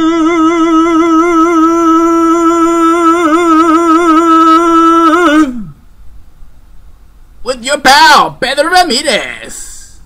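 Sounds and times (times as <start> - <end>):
man singing held note with vibrato: 0.0 - 5.9.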